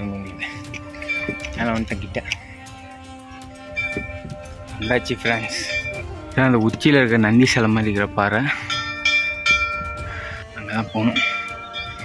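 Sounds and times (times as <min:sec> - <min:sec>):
devotional song singing: 0:00.0 - 0:12.0
bell ringing: 0:00.7 - 0:02.4, 0:03.7 - 0:04.2, 0:04.8 - 0:06.0, 0:08.6 - 0:10.1, 0:11.0 - 0:12.0.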